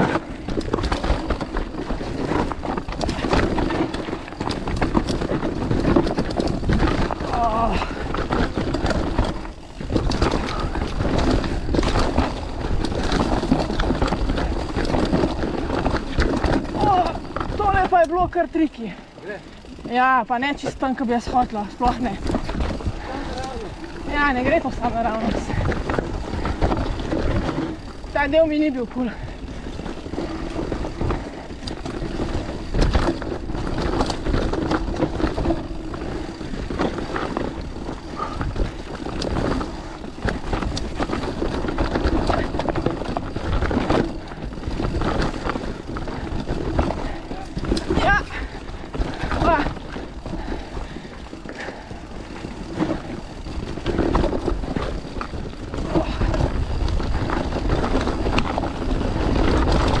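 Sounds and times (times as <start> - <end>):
bike clattering over roots: 0.0 - 60.0
bike tyres on dirt trail: 0.0 - 60.0.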